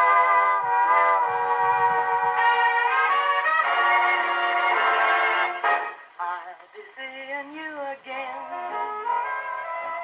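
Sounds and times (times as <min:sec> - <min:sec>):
brass-led band passage: 0:00.0 - 0:06.1
person singing with light backing: 0:01.5 - 0:10.0.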